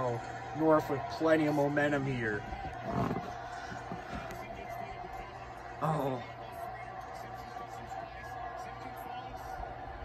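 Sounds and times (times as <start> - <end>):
faint commentary: 0.0 - 10.0
stadium crowd noise: 0.0 - 10.0.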